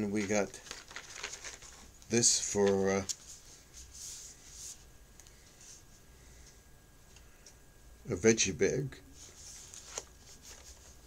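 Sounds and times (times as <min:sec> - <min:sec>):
packaging rustling: 0:00.0 - 0:03.4.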